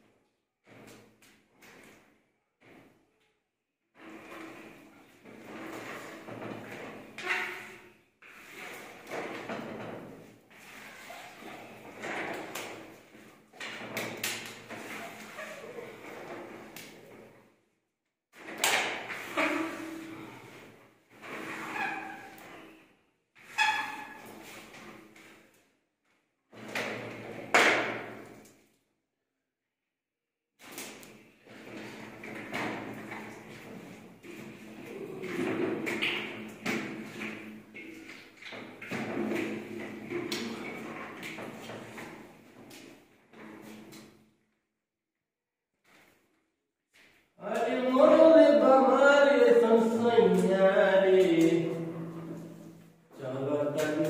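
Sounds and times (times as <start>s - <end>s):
plaster scraped by hand: 4.0s - 13.0s, 13.9s - 16.8s, 19.1s - 22.8s.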